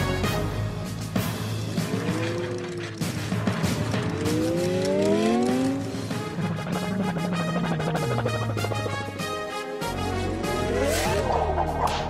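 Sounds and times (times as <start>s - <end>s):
cartoon engine revving: 1.8s - 9.5s.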